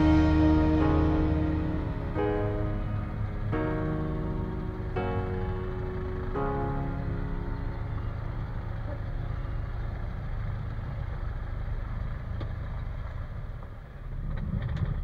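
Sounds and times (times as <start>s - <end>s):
light aircraft engine idling: 0.0s - 15.0s.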